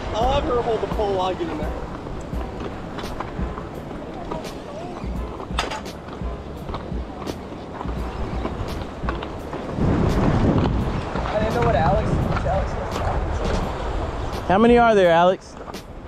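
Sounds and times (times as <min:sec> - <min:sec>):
surf washing against rocks: 0:00.0 - 0:16.0
wind buffeting microphone: 0:00.0 - 0:16.0.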